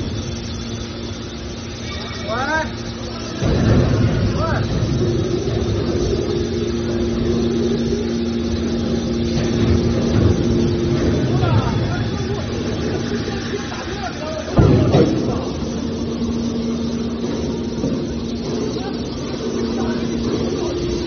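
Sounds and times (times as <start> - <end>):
hydraulic baler pump rumbling: 0.0 - 21.0.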